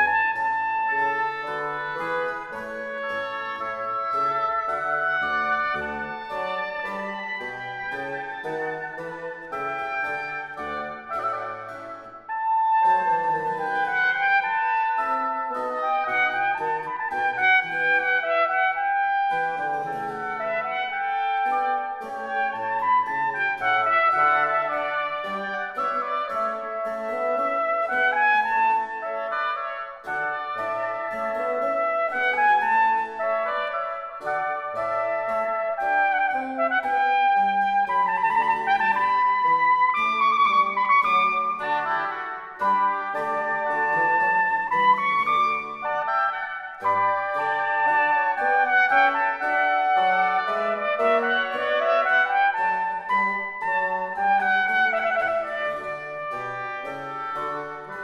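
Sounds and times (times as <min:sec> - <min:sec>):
bassoon: 0:00.0 - 0:58.0
harpsichord: 0:00.0 - 0:58.0
trumpet melody: 0:00.0 - 0:58.0.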